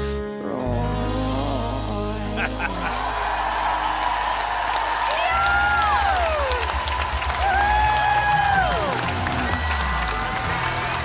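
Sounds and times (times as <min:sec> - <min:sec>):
live pop song with band: 0:00.0 - 0:03.4
audience applauding and cheering: 0:02.4 - 0:11.0.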